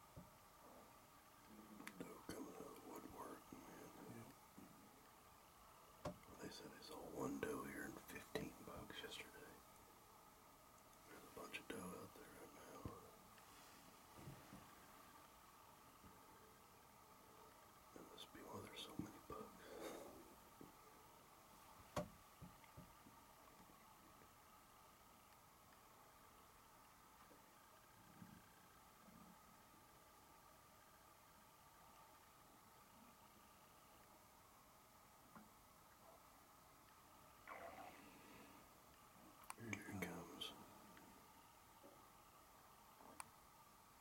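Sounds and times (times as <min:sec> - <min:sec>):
person whispering: 0:01.5 - 0:04.3, 0:06.3 - 0:09.6, 0:11.1 - 0:13.2, 0:18.0 - 0:20.2, 0:39.5 - 0:41.0.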